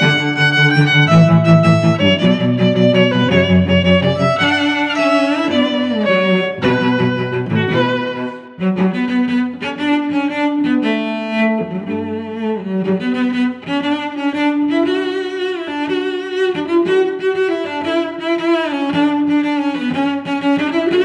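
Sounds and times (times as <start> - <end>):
bowed string instruments melody: 0.0 - 21.0.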